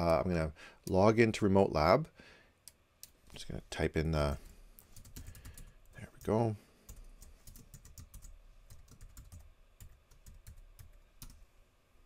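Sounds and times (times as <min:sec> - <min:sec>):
typing on computer keyboard: 0:04.9 - 0:05.7, 0:06.9 - 0:11.4.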